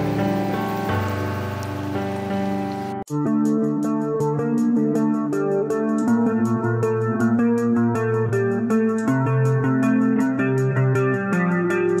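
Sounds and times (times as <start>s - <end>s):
background music sustained notes: 0.0s - 12.0s.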